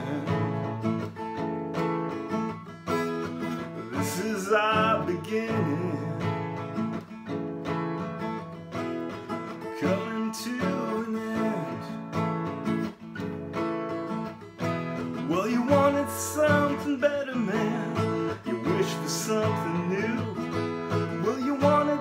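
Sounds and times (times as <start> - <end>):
acoustic guitar strummed chords: 0.0 - 22.0.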